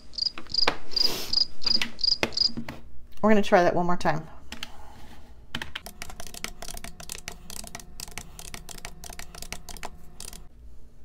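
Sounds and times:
calculator key beeps: 0:05.8 - 0:10.5.

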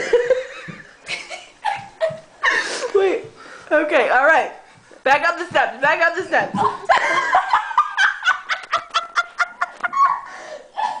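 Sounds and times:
person laughing hard: 0:06.6 - 0:11.0.

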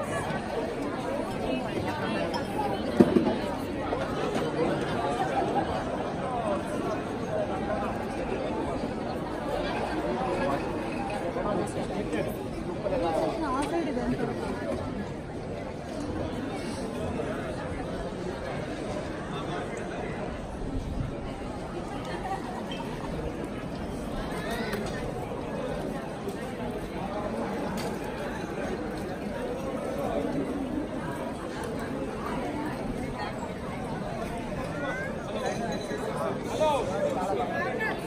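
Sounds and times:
crowd chatter: 0:00.0 - 0:38.0.

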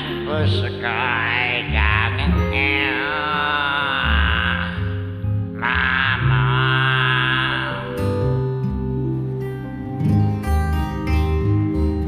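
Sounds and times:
man singing with vibrato: 0:00.0 - 0:08.4
karaoke backing track: 0:00.0 - 0:12.0.

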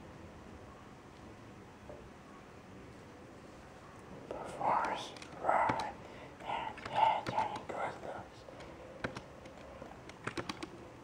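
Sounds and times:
person whispering: 0:04.3 - 0:08.5.

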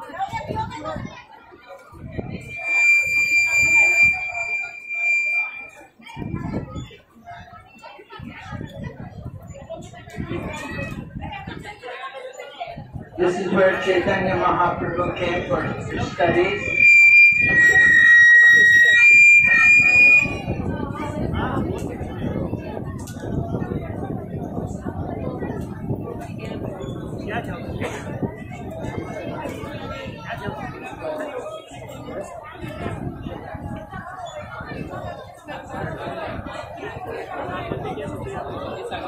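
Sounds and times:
people talking: 0:00.0 - 0:39.0
microphone feedback squeal: 0:02.2 - 0:06.9, 0:13.7 - 0:21.1.

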